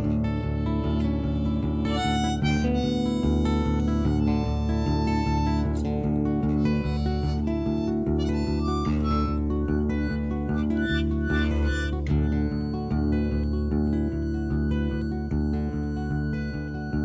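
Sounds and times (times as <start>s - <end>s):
harmonica solo: 0.0s - 17.0s
strummed acoustic guitar: 0.0s - 17.0s.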